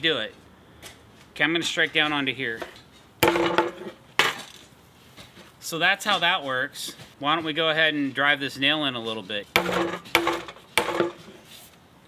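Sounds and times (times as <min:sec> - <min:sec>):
hammer striking nail into wood: 0:03.2 - 0:04.4, 0:09.6 - 0:11.2.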